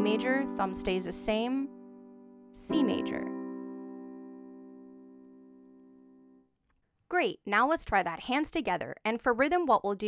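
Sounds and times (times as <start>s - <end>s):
piano chord ringing: 0.0s - 6.4s.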